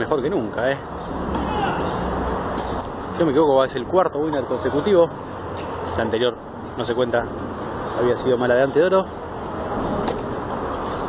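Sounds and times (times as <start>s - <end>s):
low urban rumble: 0.0s - 11.0s.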